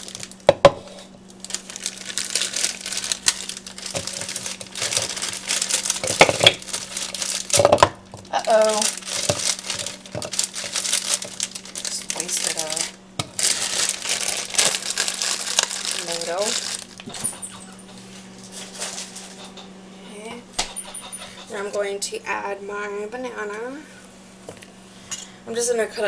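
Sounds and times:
plastic bag crinkling: 0.0 - 19.5.

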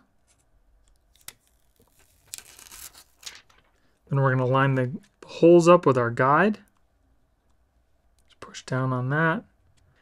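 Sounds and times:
plastic film peeling off: 0.9 - 3.7.

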